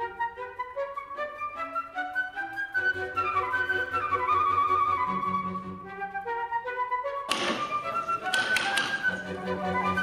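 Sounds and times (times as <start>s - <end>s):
flute music: 0.0s - 10.0s.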